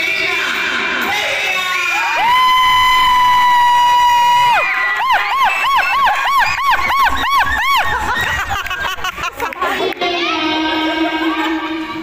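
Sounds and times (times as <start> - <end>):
shrill cheering cry: 1.6 - 8.9
rising-and-falling whoops: 2.2 - 8.5.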